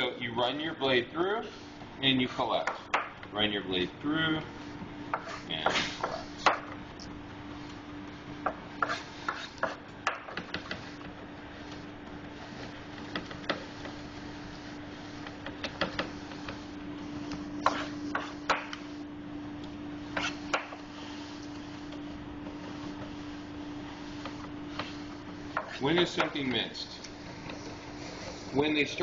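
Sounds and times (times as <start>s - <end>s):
steady low hum: 0.0s - 29.0s
blade rubbing on cutting board: 5.2s - 6.4s, 8.8s - 9.8s, 12.4s - 18.4s, 20.1s - 21.2s.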